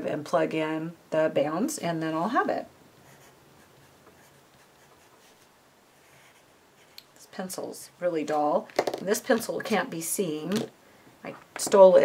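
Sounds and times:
pencil scratching on paper: 3.0s - 7.0s.

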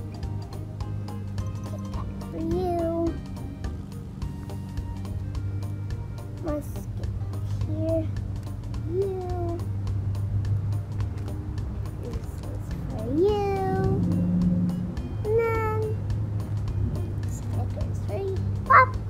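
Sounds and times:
steady low hum: 0.0s - 18.5s
background music: 0.0s - 19.0s.

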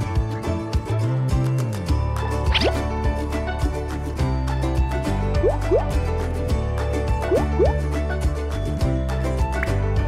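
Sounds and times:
music with steady beat: 0.0s - 9.9s
rising bloop sound effects: 2.5s - 2.8s, 5.4s - 5.9s, 7.3s - 7.8s.

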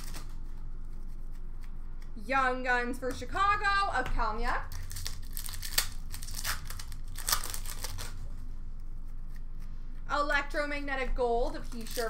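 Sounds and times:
plastic wrapper crinkling and tearing: 0.0s - 0.9s, 4.7s - 8.3s, 11.5s - 12.0s.

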